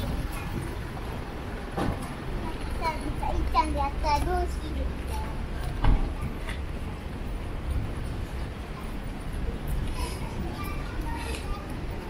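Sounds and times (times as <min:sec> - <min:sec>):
passers-by talking: 0:00.0 - 0:12.0
traffic hum: 0:00.0 - 0:12.0
young child's high voice: 0:02.4 - 0:05.4, 0:09.8 - 0:11.8.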